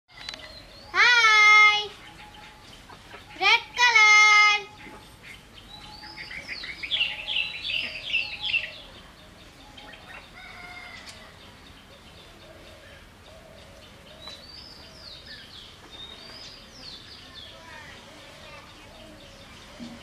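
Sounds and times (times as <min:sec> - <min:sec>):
birds calling: 0:00.1 - 0:20.0
child shouting: 0:00.9 - 0:01.9, 0:03.4 - 0:04.7.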